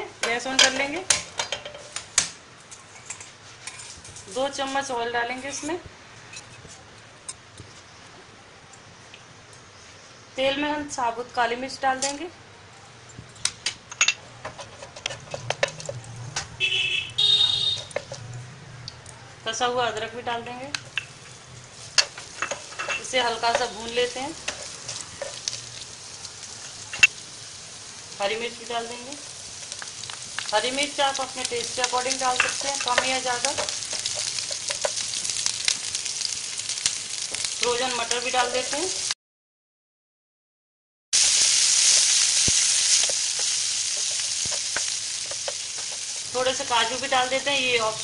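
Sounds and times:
spices sizzling in oil: 0:17.2 - 0:18.4, 0:19.5 - 0:39.2, 0:41.2 - 0:48.0.

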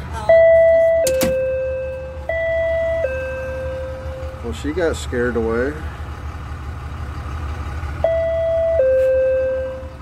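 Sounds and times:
two-tone electronic door chime: 0:00.3 - 0:04.4, 0:08.0 - 0:10.0.

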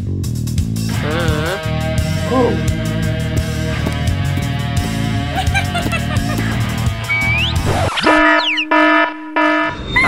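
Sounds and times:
quick falling whistle: 0:07.1 - 0:08.7
harsh alarm buzzer: 0:08.0 - 0:09.8.

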